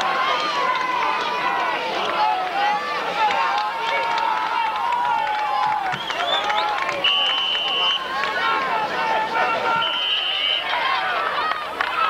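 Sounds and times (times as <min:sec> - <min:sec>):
football crowd shouting and cheering: 0:00.0 - 0:12.0.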